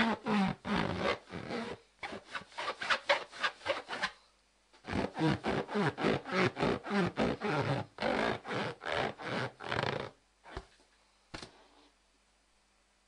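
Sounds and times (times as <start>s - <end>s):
hand rubbing balloon squeaks: 0.0s - 4.2s, 4.8s - 10.7s.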